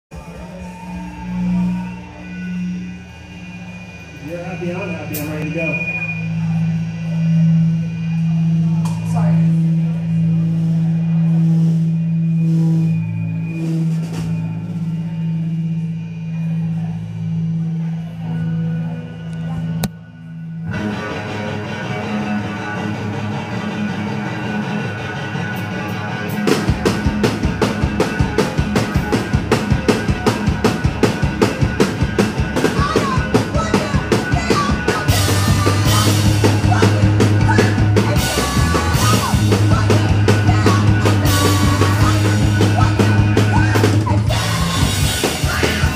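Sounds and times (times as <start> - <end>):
rock band playing live: 0.1 - 18.1, 20.6 - 45.9
low bass notes: 0.1 - 45.9
drum kit fast beats: 26.4 - 45.9.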